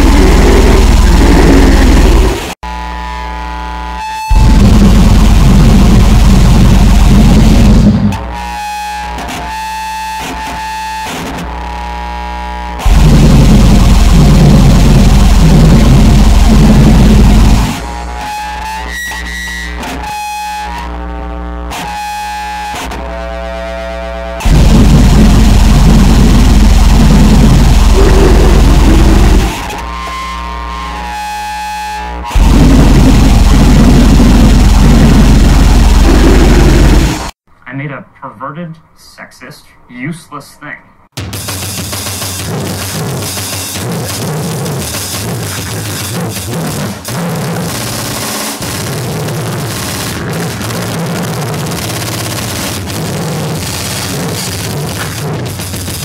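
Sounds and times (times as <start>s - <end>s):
choppy low rumble: 0.0s - 2.6s, 4.3s - 8.2s, 12.8s - 18.2s, 24.4s - 29.8s, 32.3s - 37.4s
held buzzing tones: 0.0s - 37.4s
wall of distorted noise: 0.0s - 38.0s, 41.2s - 56.0s.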